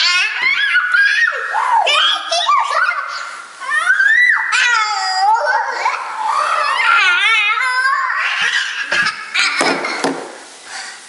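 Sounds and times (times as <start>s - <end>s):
child crying: 3.6s - 9.4s.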